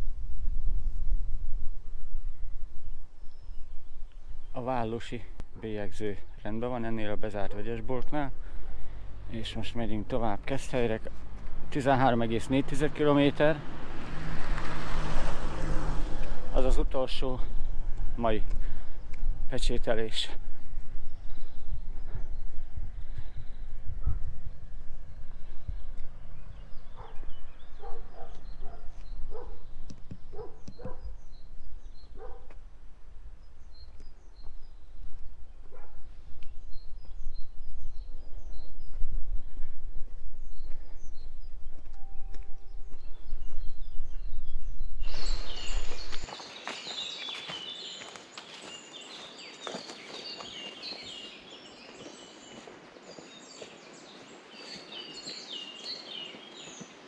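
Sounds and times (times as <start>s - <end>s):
low rumble on microphone: 0.0s - 4.5s, 14.4s - 46.3s
footsteps outdoors: 0.0s - 57.0s
birds singing and chirping: 2.0s - 57.0s.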